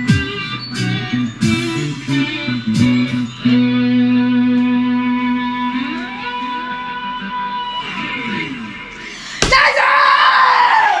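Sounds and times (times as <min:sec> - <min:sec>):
electric and bass guitar: 0:00.0 - 0:09.0
person screaming excitedly: 0:09.4 - 0:11.0.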